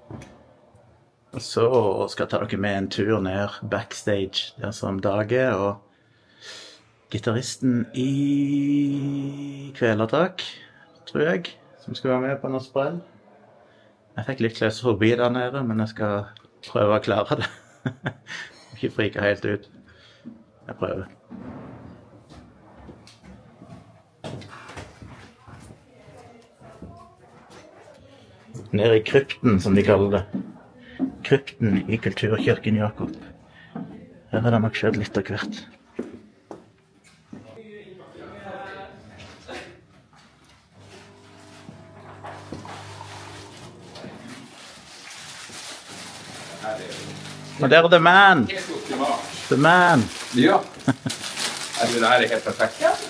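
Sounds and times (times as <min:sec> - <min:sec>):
rustling: 0:40.8 - 0:47.6, 0:48.5 - 0:53.0
faint voices: 0:45.9 - 0:50.7.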